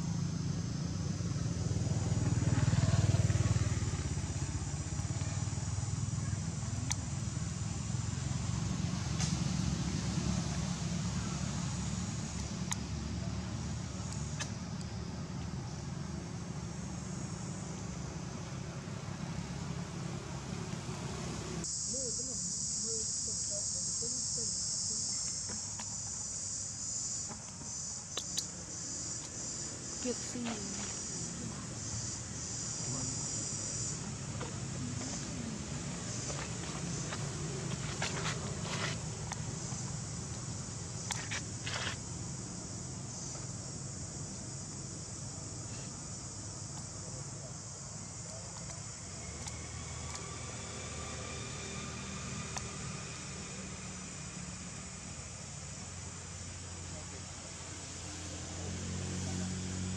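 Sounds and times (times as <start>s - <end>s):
high-pitched insect chorus: 0.0s - 59.9s
engine running: 30.0s - 43.4s.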